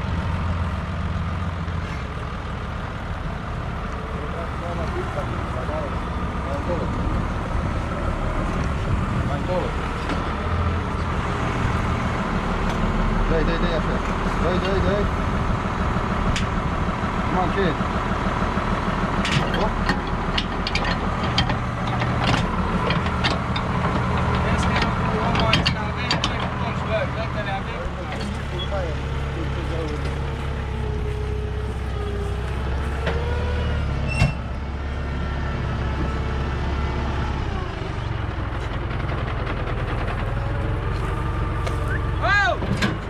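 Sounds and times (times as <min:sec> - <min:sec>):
tractor diesel engine running: 0:00.0 - 0:43.0.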